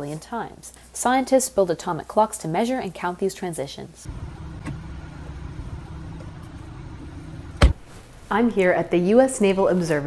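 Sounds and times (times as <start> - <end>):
low vehicle rumble: 4.1 - 8.0.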